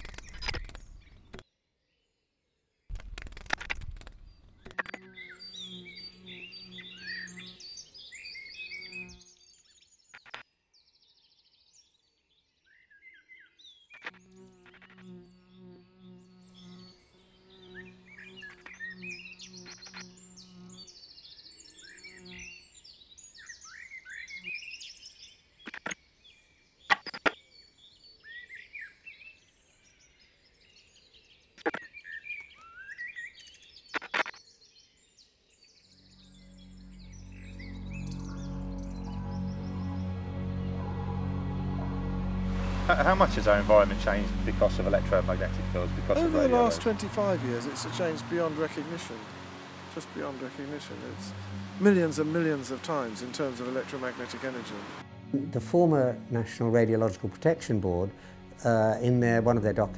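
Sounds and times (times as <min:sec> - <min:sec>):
sharp clicks: 0:00.0 - 0:01.4, 0:02.9 - 0:04.9
small birds chirping: 0:00.0 - 0:02.2, 0:02.9 - 0:55.0
low sustained music tone: 0:35.9 - 0:59.9.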